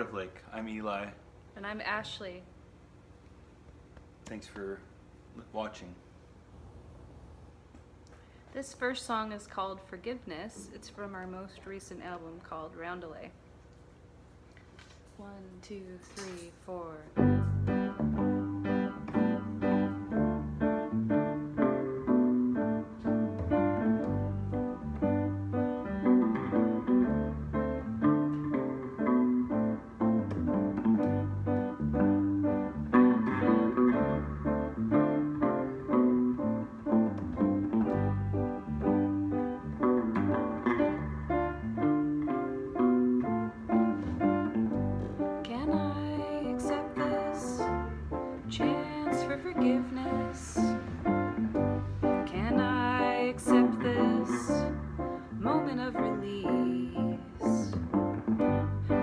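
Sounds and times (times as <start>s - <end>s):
guitar: 16.0s - 59.0s
keyboard playing: 17.2s - 59.0s
low bass notes: 17.2s - 59.0s
person singing: 45.5s - 47.8s, 52.3s - 57.8s.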